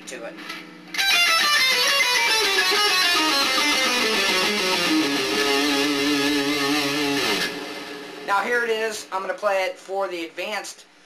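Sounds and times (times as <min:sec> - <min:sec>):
electric guitar run: 0:01.0 - 0:08.3.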